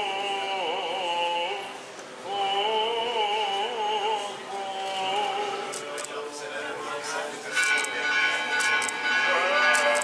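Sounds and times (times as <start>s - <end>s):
murmur of crowd voices: 0.0s - 10.0s
church bells ringing: 7.4s - 10.0s.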